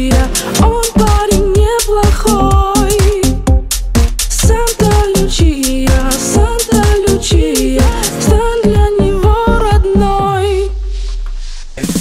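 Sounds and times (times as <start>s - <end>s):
pop song: 0.0s - 12.0s.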